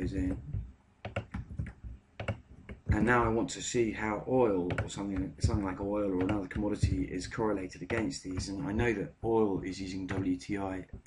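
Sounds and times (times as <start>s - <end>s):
computer keyboard typing: 0.0s - 3.3s, 4.6s - 8.9s, 10.0s - 11.0s.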